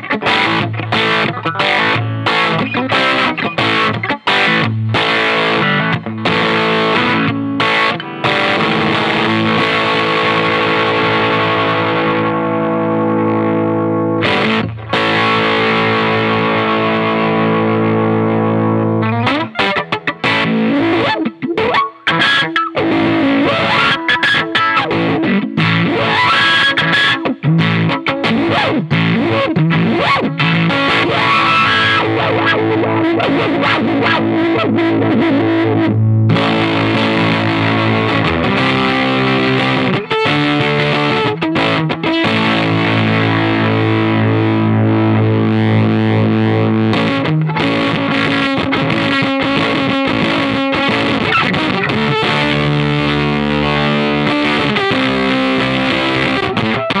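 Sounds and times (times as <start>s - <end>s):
fuzz-distorted electric guitar: 0.0s - 57.0s.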